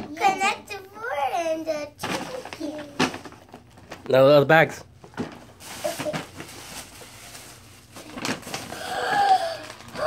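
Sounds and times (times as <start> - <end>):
tissue paper rustling: 5.3 - 8.9.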